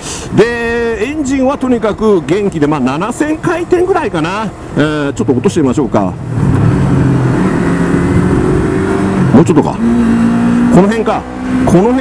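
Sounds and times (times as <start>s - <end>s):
motorcycle engine revving: 6.2s - 12.0s.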